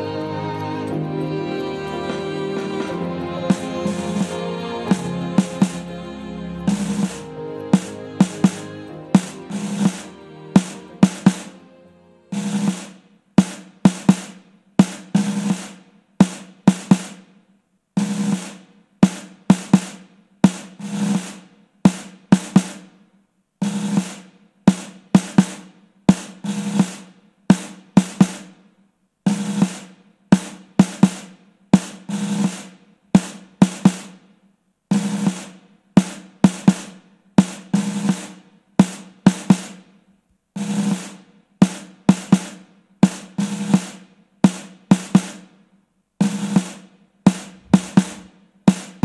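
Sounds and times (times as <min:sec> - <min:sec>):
snare drum march cadence: 0:02.0 - 0:11.7, 0:12.3 - 0:17.3, 0:18.0 - 0:22.9, 0:23.6 - 0:28.6, 0:29.3 - 0:34.2, 0:34.9 - 0:39.8, 0:40.6 - 0:45.5, 0:46.2 - 0:49.0.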